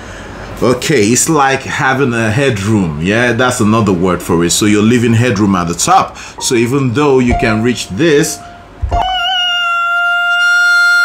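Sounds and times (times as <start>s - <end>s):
man singing a high note: 7.6s - 11.0s.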